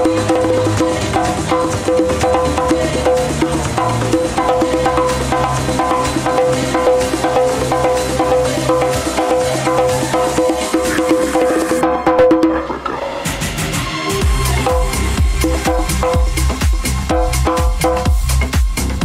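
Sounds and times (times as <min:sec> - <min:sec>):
hand drum: 0:00.0 - 0:19.0
house music: 0:00.0 - 0:19.0
wood-block-like percussion loop: 0:00.0 - 0:19.0.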